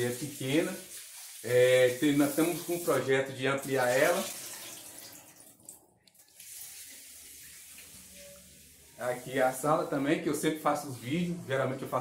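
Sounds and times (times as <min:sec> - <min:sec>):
tap water running into sink: 0:00.0 - 0:08.2.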